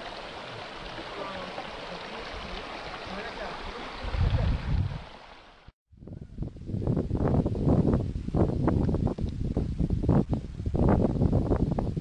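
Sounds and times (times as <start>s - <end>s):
wind buffeting microphone: 3.9s - 5.2s, 5.9s - 12.0s.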